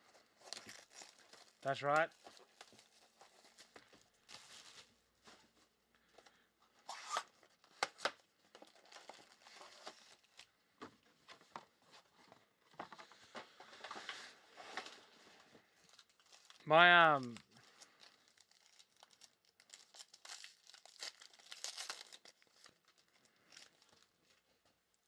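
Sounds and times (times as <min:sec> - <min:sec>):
plastic wrap crinkling and tearing: 0:00.0 - 0:05.3, 0:06.9 - 0:10.6, 0:14.0 - 0:16.6, 0:17.2 - 0:24.7.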